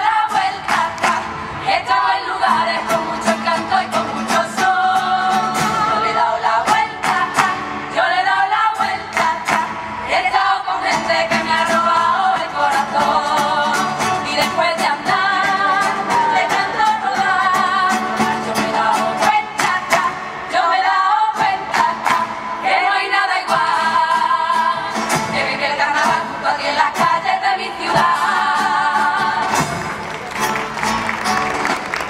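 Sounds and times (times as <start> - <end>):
women singing in chorus: 0.0 - 29.8
acoustic guitars: 0.0 - 32.0.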